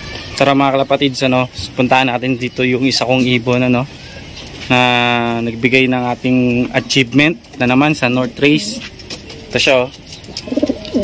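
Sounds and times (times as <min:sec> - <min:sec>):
pigeon cooing: 0:08.2 - 0:11.0.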